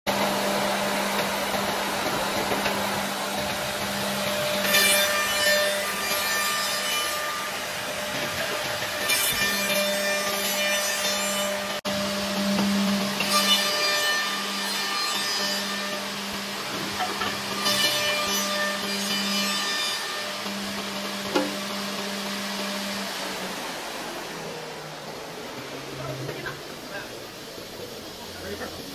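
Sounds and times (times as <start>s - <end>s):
high-pitched wood cutting noise: 0.1s - 28.9s
machine humming: 0.1s - 28.9s.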